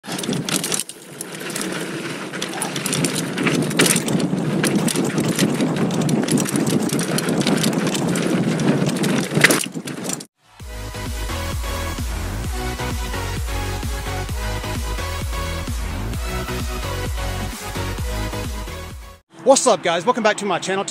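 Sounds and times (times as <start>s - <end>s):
bike tyres rushing on dirt: 0.0s - 10.3s
bike clicks and rattles: 0.0s - 10.4s.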